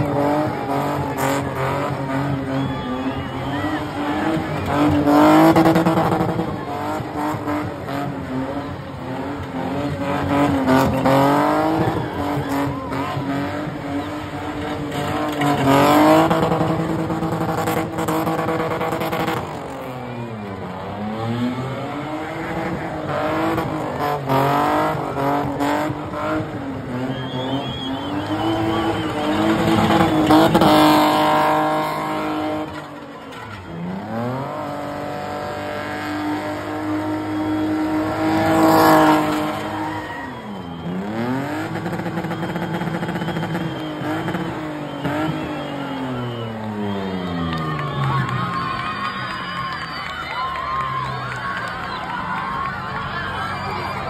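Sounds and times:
car engine at high revs: 0.0 - 49.9
tyres spinning and squealing: 0.0 - 54.0.

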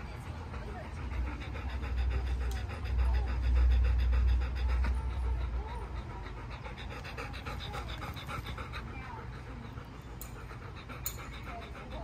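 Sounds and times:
dog panting: 0.0 - 12.0.

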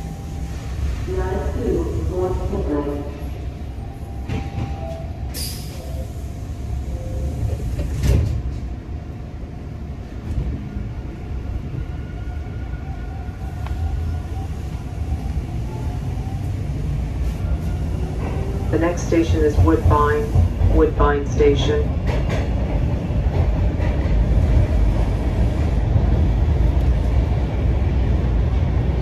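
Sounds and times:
subway car rumble: 0.0 - 29.0.

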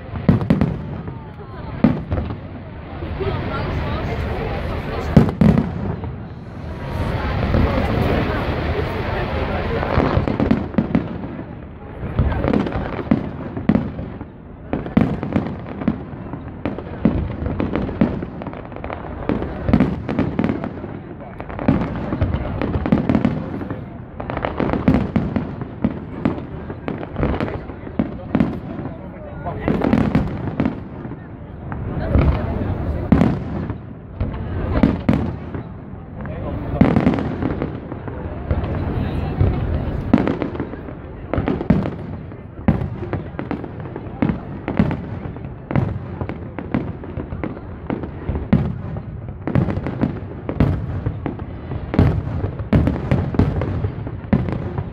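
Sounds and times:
fireworks bursting and crackling: 0.0 - 54.9.

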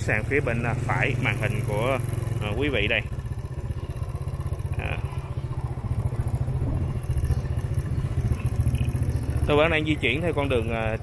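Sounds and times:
motorbike rumbling: 0.0 - 11.0.

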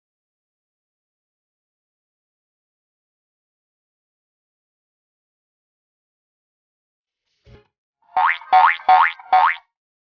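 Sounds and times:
cartoon boing effects: 8.1 - 9.7.

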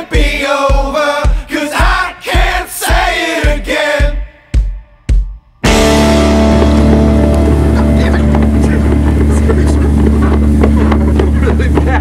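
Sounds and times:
loud steady low hum: 5.7 - 11.9
people's voices: 7.5 - 12.0.

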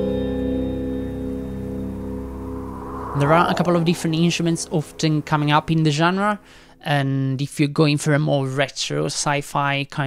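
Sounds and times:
sustained low music chord: 0.4 - 6.7.

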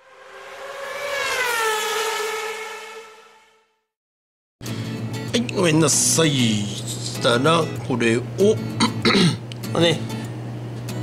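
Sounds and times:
electronic transition tone: 0.0 - 3.7.

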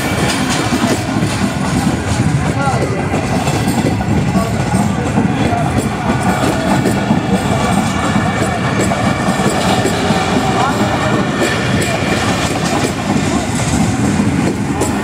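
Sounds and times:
train coaches rumbling past: 0.0 - 15.0
wheels clacking on track: 0.0 - 15.0.

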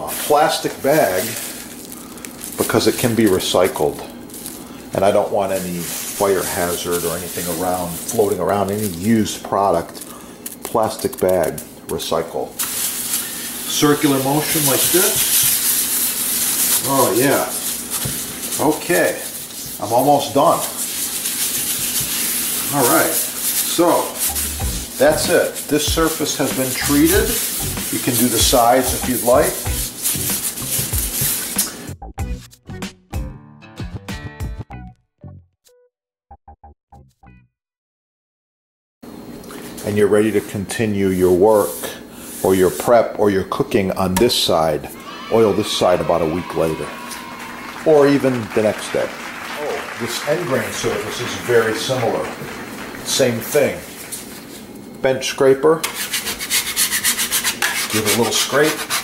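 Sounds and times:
plastic bag scrubbing wood: 0.0 - 10.0, 10.8 - 31.9, 44.5 - 54.6, 55.9 - 59.0
broken snatches of music: 24.2 - 33.3
bench scraper scraping wood: 55.8 - 59.0.

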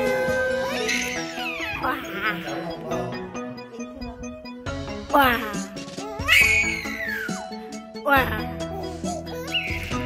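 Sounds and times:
baby squealing with laughter: 0.0 - 2.5, 6.2 - 7.4, 9.4 - 10.0
background music: 0.0 - 10.0.

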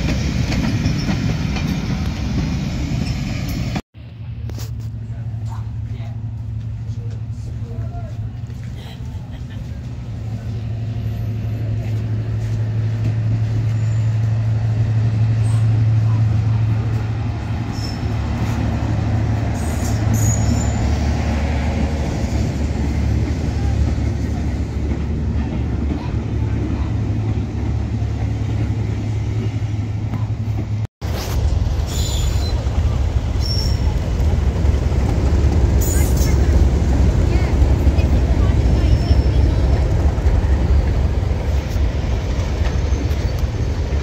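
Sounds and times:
diesel locomotive engine droning: 0.0 - 44.0.

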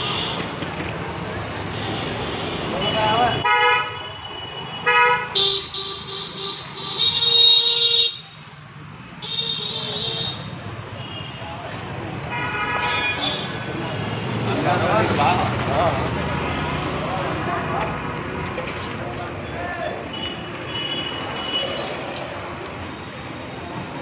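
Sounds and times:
street traffic noise: 0.0 - 24.0
vehicle horns honking: 1.8 - 8.4, 12.2 - 14.4
people's voices: 13.2 - 20.3.

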